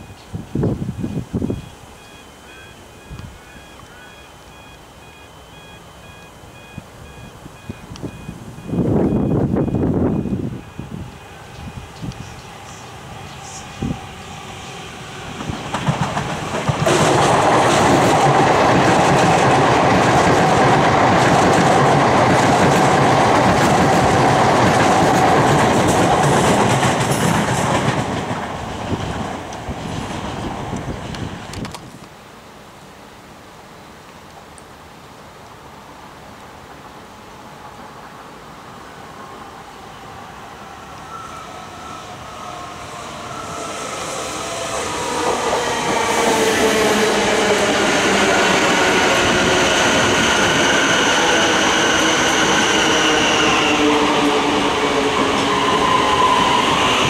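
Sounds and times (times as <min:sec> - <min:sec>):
electric train hum: 0:00.0 - 0:32.1, 0:36.1 - 0:57.0
wheels clattering on rails: 0:15.4 - 0:32.0.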